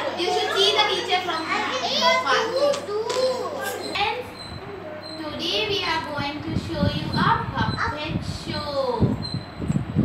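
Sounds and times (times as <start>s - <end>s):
young children talking and calling: 0.0s - 10.0s.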